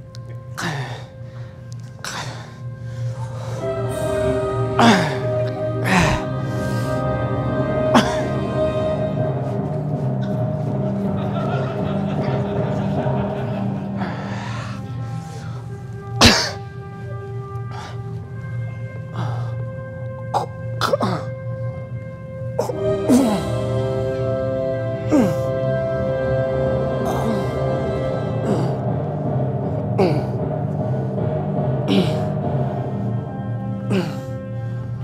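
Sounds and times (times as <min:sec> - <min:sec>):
music of long held chords: 0:00.0 - 0:35.0
man coughing: 0:04.8 - 0:06.3, 0:07.9 - 0:08.4, 0:16.2 - 0:16.6, 0:20.4 - 0:21.3.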